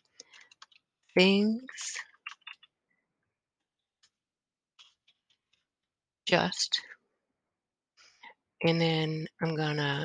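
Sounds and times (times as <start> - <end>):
faint keyboard keystrokes: 0.0 - 1.1.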